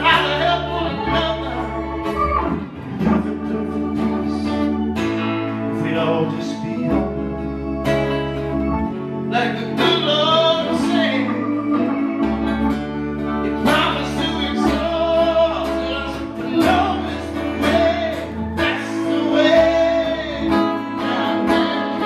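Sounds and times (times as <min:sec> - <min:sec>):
man singing: 0:00.0 - 0:07.8, 0:09.2 - 0:12.5, 0:13.4 - 0:22.0
acoustic guitar strumming: 0:00.0 - 0:22.0
sustained low chords: 0:00.0 - 0:22.0.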